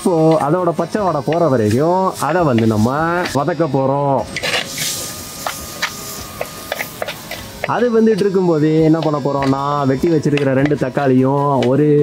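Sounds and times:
spatula scraping sauteing food: 0.0s - 11.1s.

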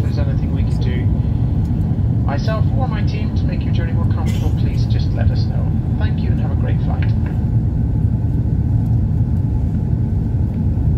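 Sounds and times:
pa announcement over speakers: 0.0s - 1.4s, 2.2s - 7.4s
airliner cabin rumble: 0.0s - 10.9s.

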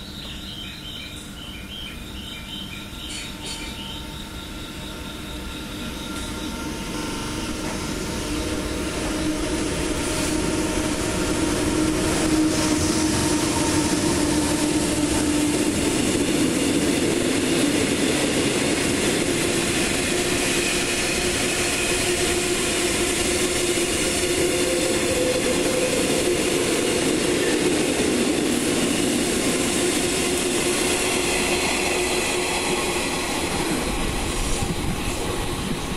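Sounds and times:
electric locomotive hum: 0.0s - 35.9s
train wheels on rails: 0.0s - 35.9s.

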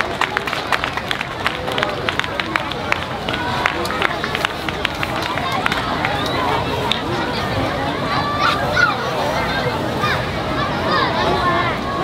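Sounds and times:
hand clapping: 0.0s - 7.1s
crowd voices: 0.0s - 12.0s.

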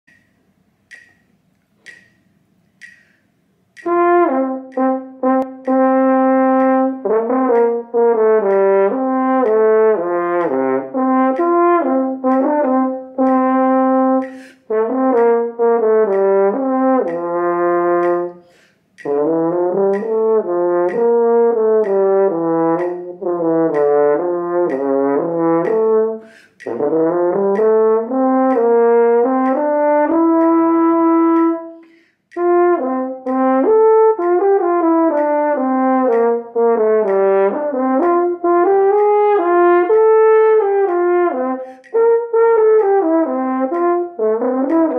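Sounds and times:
metronome ticking: 0.0s - 44.9s
french horn playing: 3.8s - 44.9s.

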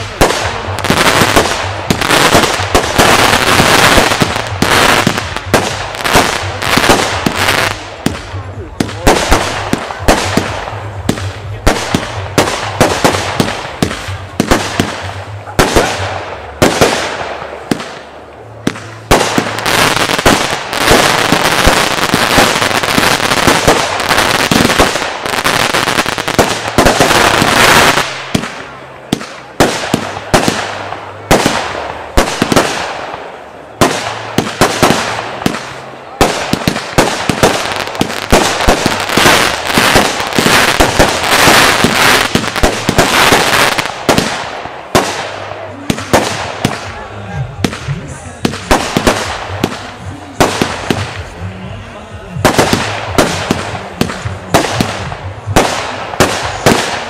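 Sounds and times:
firework reports and crackle: 0.0s - 57.0s.

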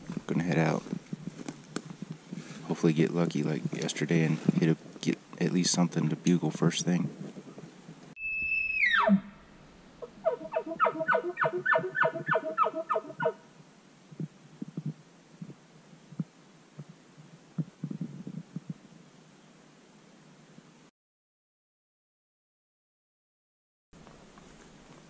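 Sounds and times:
faint footsteps on forest floor: 0.0s - 2.8s, 24.0s - 25.0s
elk bugling: 8.3s - 13.4s.

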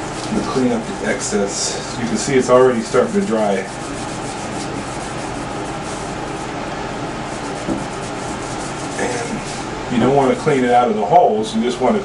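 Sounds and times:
cotton pad scrubbing circuit board: 0.0s - 10.2s.

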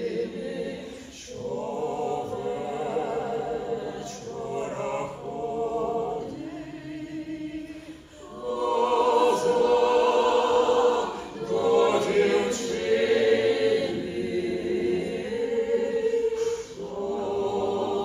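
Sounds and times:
folk choir singing in harmony: 0.0s - 18.0s.

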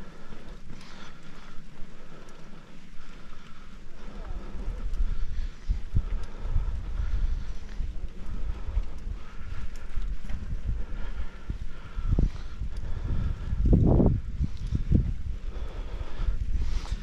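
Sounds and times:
bike rolling on dirt road: 0.0s - 17.0s
wind buffeting microphone: 0.0s - 17.0s.

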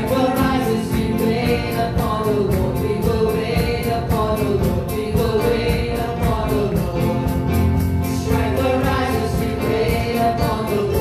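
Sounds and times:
instrumental accompaniment: 0.0s - 11.0s
men and women singing: 0.0s - 11.0s
steady ticking beat: 0.0s - 11.0s.

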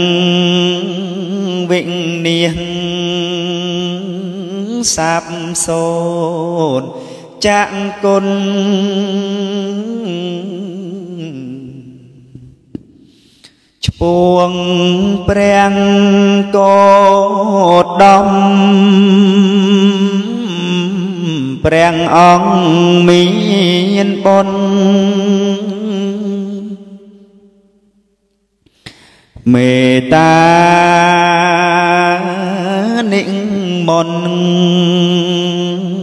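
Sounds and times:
man singing into a microphone: 0.0s - 12.8s, 13.4s - 27.4s, 28.7s - 36.0s.

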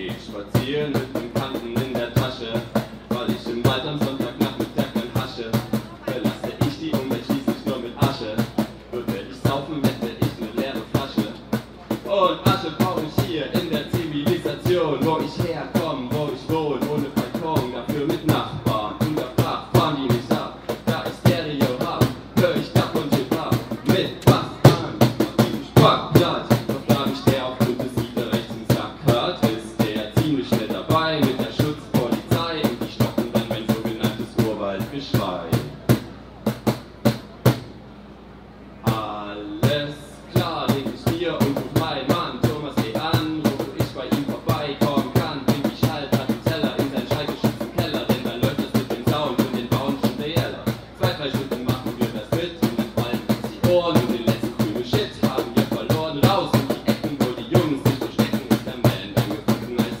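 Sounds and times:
rapping into a microphone: 0.0s - 35.7s, 38.9s - 60.0s
hand-slapped cajon beat: 0.0s - 37.8s, 38.8s - 60.0s.

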